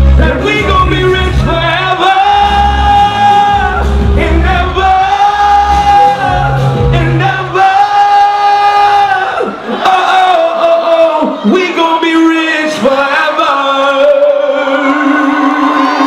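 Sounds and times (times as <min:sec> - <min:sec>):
live backing track with heavy bass: 0:00.0 - 0:16.0
man singing into a microphone: 0:00.2 - 0:16.0.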